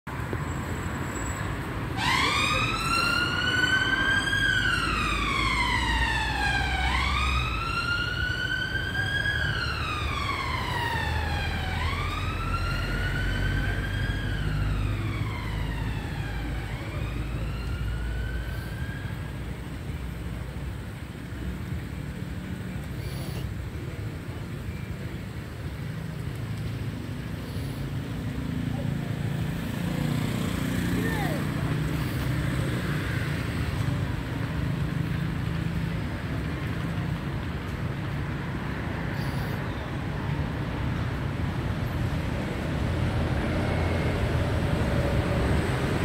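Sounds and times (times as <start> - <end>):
street traffic rumble: 0.0 - 46.0
emergency vehicle siren wailing: 0.7 - 21.2, 28.5 - 46.0.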